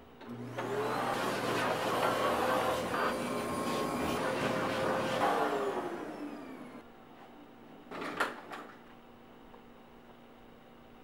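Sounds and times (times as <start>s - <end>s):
vacuum cleaner spinning down: 0.2s - 6.8s.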